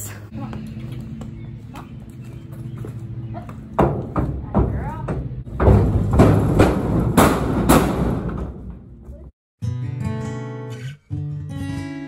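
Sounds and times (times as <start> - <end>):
horse kicking metal trailer walls: 3.4 - 9.3.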